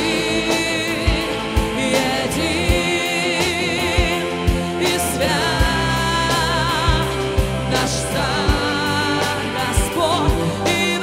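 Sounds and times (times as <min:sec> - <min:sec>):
band accompaniment: 0:00.0 - 0:11.0
worship song with vibrato vocals: 0:00.0 - 0:11.0.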